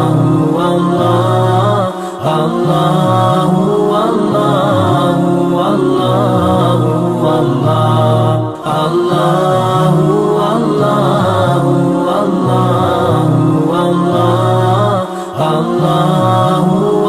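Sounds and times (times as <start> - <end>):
person chanting: 0.0 - 17.0.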